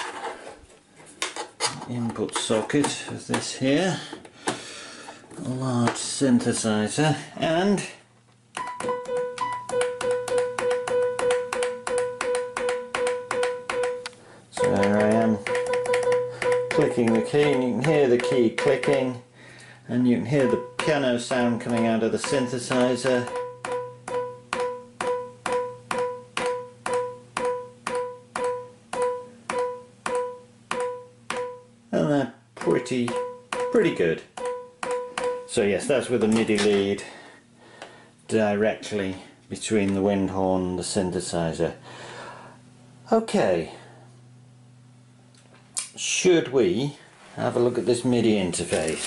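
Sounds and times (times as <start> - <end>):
key clicks: 8.6 - 19.2
repeated synthesizer piano note: 8.6 - 19.2, 20.2 - 31.8, 32.6 - 36.0.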